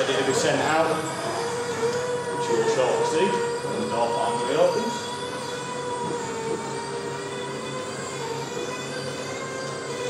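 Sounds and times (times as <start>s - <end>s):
roller shutter motor whining: 0.0s - 10.0s.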